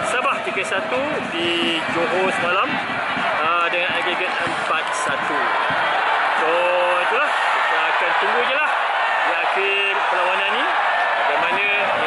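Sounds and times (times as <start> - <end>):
man talking: 0.0 - 2.8, 3.4 - 5.6, 6.4 - 10.7, 11.3 - 12.0
stadium crowd noise: 0.0 - 12.0.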